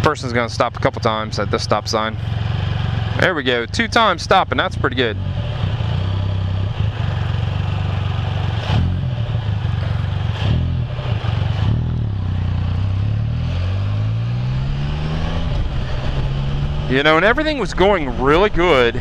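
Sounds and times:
motorcycle engine idling and accelerating: 0:00.0 - 0:19.0.

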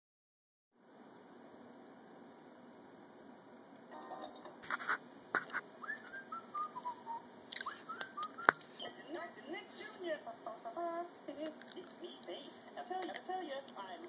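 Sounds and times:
person speaking: 0:08.6 - 0:14.0.

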